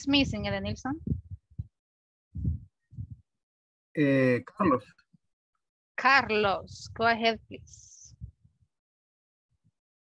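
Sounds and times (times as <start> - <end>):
person speaking: 0.0 - 1.4, 4.0 - 4.9, 6.0 - 8.3
low muffled thuds: 0.0 - 1.8, 2.4 - 3.3.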